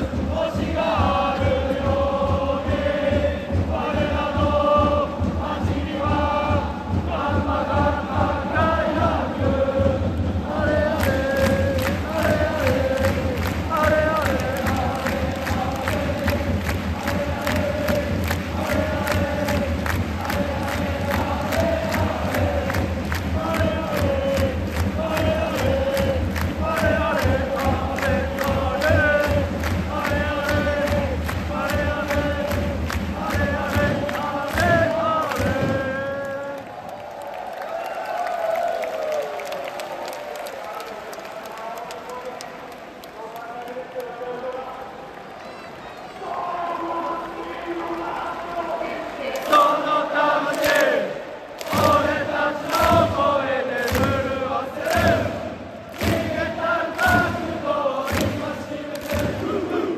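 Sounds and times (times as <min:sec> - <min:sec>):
fast steady drum beat: 0:00.0 - 0:36.8, 0:51.6 - 0:59.9
crowd chanting: 0:00.0 - 0:37.5, 0:45.4 - 0:59.9
crowd cheering: 0:07.1 - 0:59.9.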